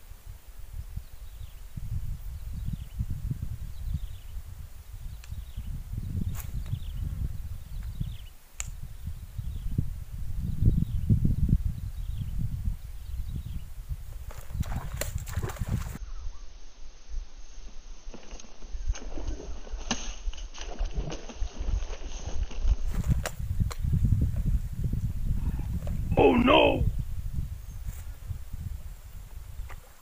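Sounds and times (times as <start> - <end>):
wind rumbling on microphone: 0.0 - 30.0
fish thrashing and splashing water: 14.6 - 16.0, 20.6 - 22.7.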